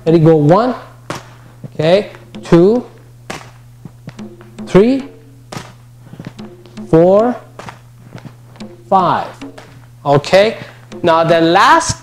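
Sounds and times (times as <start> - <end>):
background training music: 0.0 - 12.0
kick striking a pad: 1.0 - 9.8.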